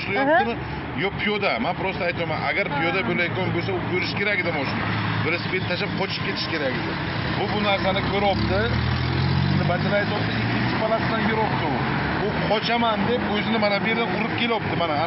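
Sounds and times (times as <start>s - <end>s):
people talking: 0.0s - 6.8s.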